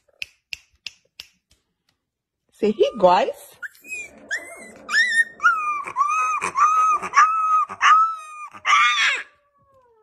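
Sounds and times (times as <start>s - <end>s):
puppy whining squeals: 2.8s - 10.0s.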